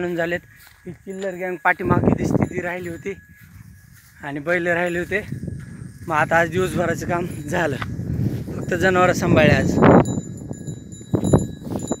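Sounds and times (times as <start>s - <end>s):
high ringing tones: 0.0s - 12.0s.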